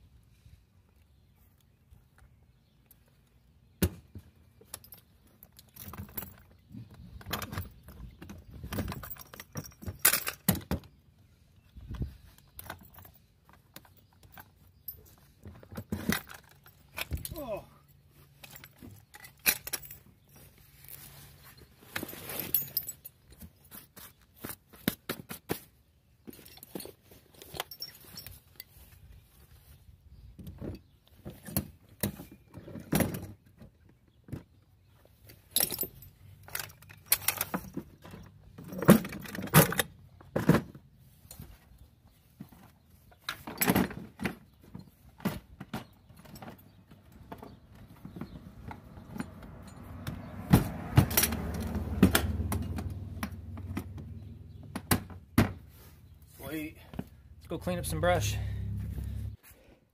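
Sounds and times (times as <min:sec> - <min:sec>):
metal hardware clinking: 0:18.4 - 0:20.2.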